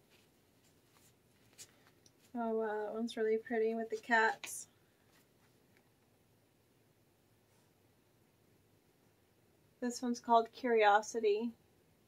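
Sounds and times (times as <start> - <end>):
soft card rustling: 0.0 - 2.4.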